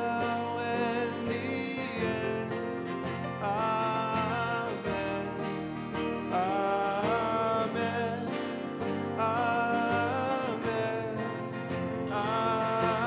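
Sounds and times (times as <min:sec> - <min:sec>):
piano: 0:00.0 - 0:13.0
singers holding long notes: 0:00.0 - 0:13.0
strummed acoustic guitars: 0:00.0 - 0:13.0.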